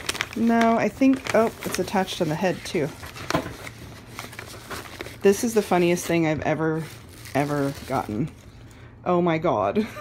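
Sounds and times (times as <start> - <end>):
tissue paper rustling: 0.0 - 8.6.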